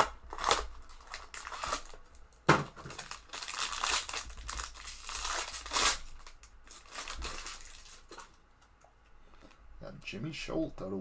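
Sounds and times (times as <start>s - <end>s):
foil wrapper crinkling: 0.0s - 8.4s.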